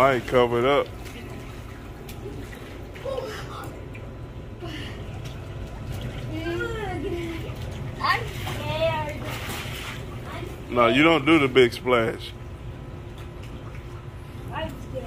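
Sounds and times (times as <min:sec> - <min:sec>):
low hum: 0:00.0 - 0:15.0
water splashing in a pool: 0:00.0 - 0:15.0.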